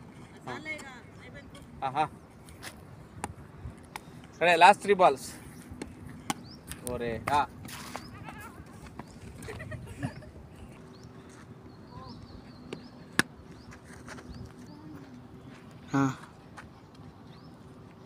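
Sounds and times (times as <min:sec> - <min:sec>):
low outdoor background: 0:00.0 - 0:18.0.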